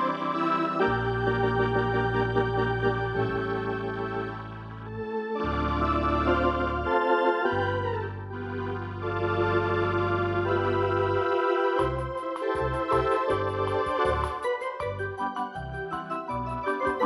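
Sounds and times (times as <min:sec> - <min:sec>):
electronic organ chords: 0:00.0 - 0:17.0
organ rhythm with ticking beat: 0:00.0 - 0:17.0.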